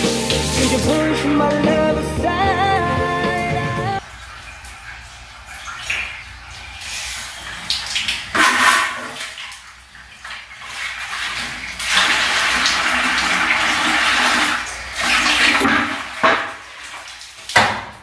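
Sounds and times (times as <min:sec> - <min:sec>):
toilet flushing: 0:00.0 - 0:01.9, 0:02.8 - 0:17.4
water splashes: 0:04.0 - 0:18.0.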